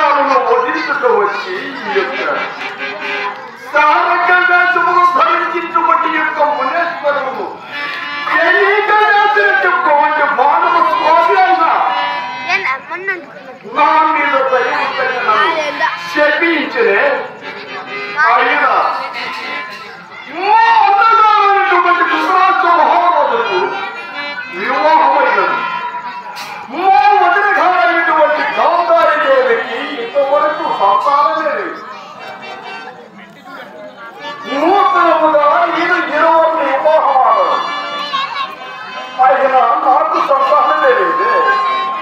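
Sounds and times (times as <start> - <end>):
harmonium: 0.0 - 42.0
man singing declamatory verse: 20.3 - 23.8, 34.4 - 37.7, 39.1 - 42.0.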